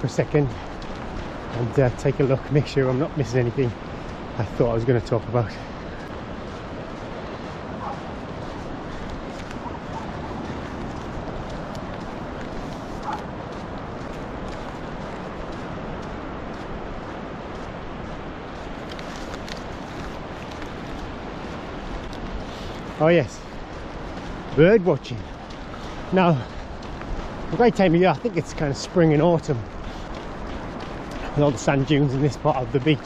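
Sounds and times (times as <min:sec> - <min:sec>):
wind on the microphone: 0:00.0 - 0:33.0.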